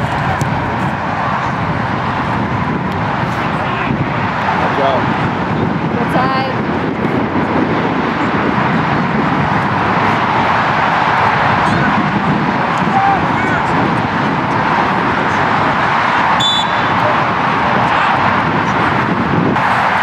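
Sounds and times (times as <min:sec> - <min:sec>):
steady rushing background noise: 0:00.0 - 0:20.0
distant shouts of players: 0:10.0 - 0:19.0
short call: 0:16.4 - 0:17.0.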